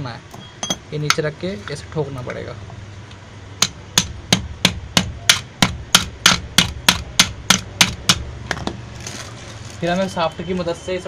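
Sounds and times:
hammer striking rivet: 3.6s - 8.8s.

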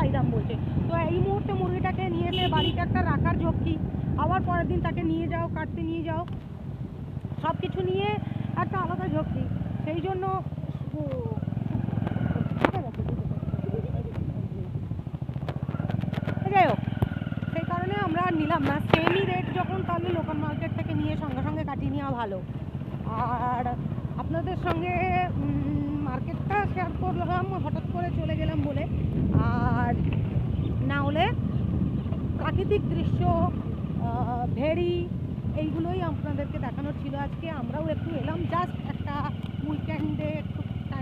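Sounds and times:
woman speaking: 0.0s - 6.3s, 7.4s - 11.4s, 12.2s - 14.1s, 16.4s - 16.8s, 17.5s - 30.0s, 30.8s - 31.4s, 32.4s - 41.0s
motorcycle engine running: 0.0s - 41.0s
wind on microphone: 0.0s - 41.0s.

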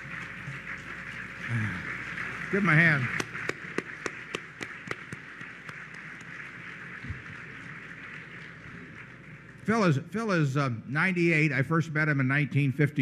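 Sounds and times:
close hand claps: 0.0s - 9.6s
crowd clapping: 0.0s - 10.4s.

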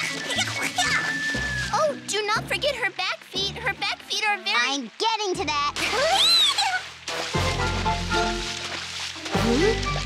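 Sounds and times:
water splashing: 0.0s - 10.0s.

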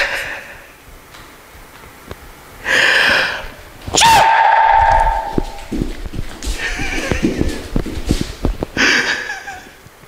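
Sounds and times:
man shrieking: 3.9s - 5.4s
bare feet thumping on floor: 4.6s - 8.8s.

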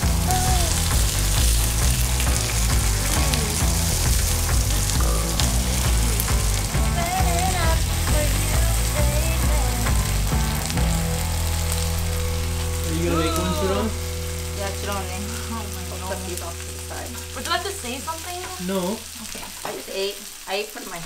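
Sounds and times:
background music: 0.0s - 19.4s
meat sizzling in a grill pan: 0.0s - 21.0s.

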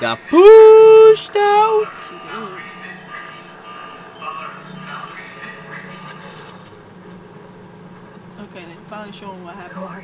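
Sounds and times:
faint television dialogue: 0.0s - 10.0s
low steady hum: 0.0s - 10.0s.

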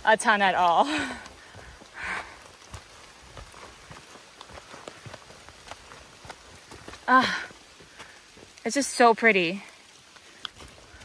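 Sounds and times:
footsteps on wet dirt trail: 0.0s - 11.0s
light rain on leaves: 0.0s - 11.0s.

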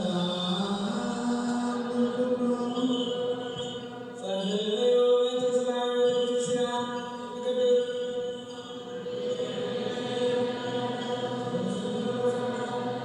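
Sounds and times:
person chanting: 0.0s - 8.0s, 8.8s - 13.0s.

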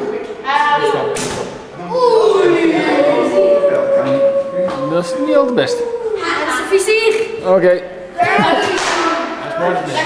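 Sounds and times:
voices: 1.8s - 10.0s.

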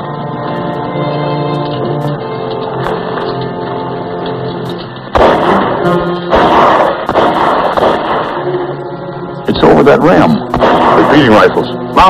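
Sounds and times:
orchestral film music: 0.0s - 12.0s
distant rifle shots echoing: 5.1s - 8.6s, 10.5s - 11.5s.

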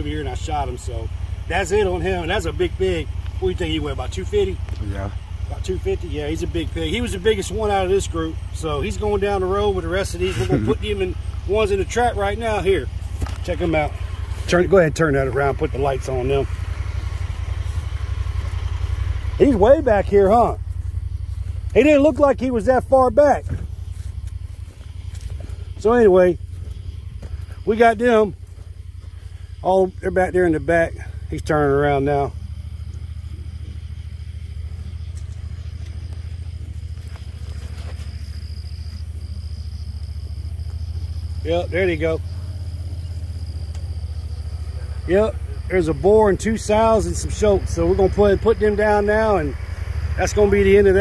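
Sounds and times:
engine idling: 0.0s - 51.0s.

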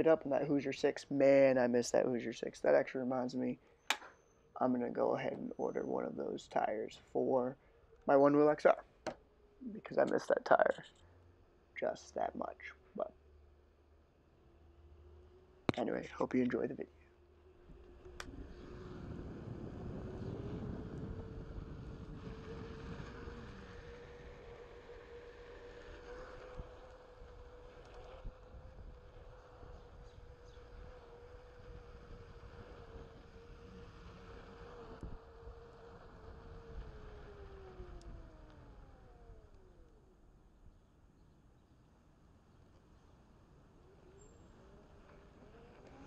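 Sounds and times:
electric motor whining: 17.1s - 40.2s, 43.8s - 46.0s
wind on microphone: 17.6s - 39.5s.

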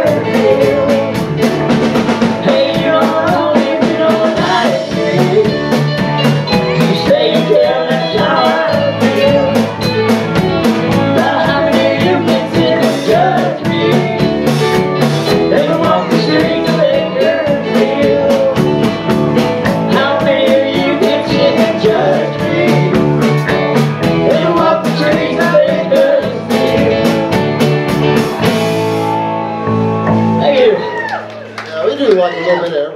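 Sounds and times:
person singing: 0.0s - 1.5s, 2.2s - 19.0s, 19.7s - 23.4s, 24.0s - 27.7s
drum kit: 0.0s - 31.5s
electric guitar: 0.0s - 31.7s
country-rock band playing: 0.0s - 32.5s.

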